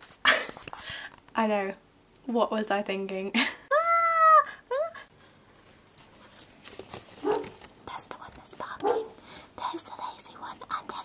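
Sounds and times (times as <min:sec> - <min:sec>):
dog barking: 0:07.2 - 0:07.6, 0:08.8 - 0:09.2
person whispering: 0:07.9 - 0:09.0, 0:09.6 - 0:11.0.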